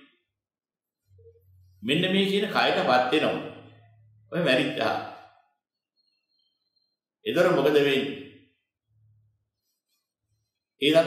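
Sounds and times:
faint thin high tone: 0:01.1 - 0:01.8
man speaking: 0:01.8 - 0:03.7, 0:04.3 - 0:05.3, 0:07.2 - 0:08.4, 0:10.8 - 0:11.0.

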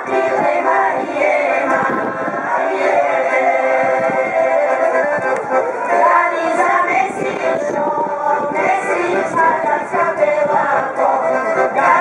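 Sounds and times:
accordion: 0:00.0 - 0:12.0
women singing folk songs together: 0:00.0 - 0:12.0.

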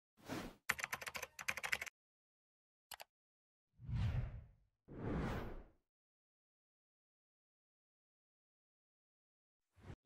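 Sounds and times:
computer keyboard typing: 0:00.7 - 0:01.9.

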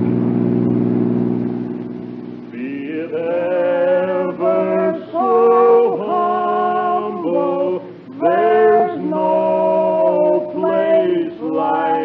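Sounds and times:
car engine running: 0:00.0 - 0:05.2.

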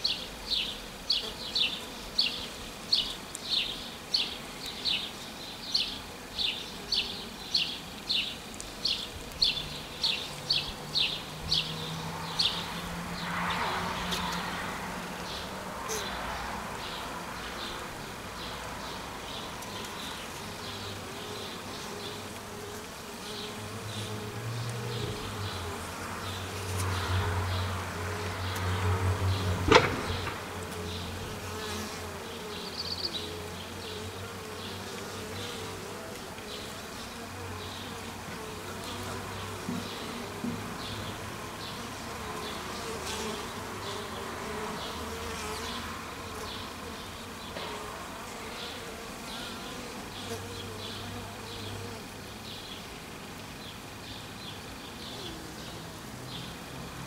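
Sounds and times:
honeybees buzzing: 0:00.0 - 0:57.0
sharp knock: 0:29.6 - 0:30.7.

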